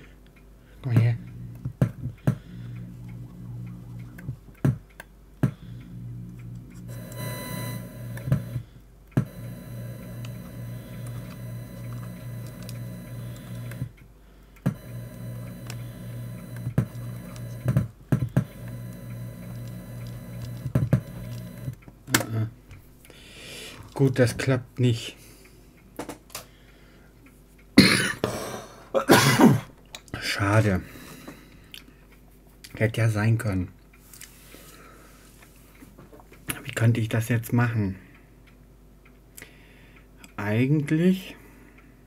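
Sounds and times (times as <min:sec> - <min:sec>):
electrical hum: 0:00.0 - 0:42.0.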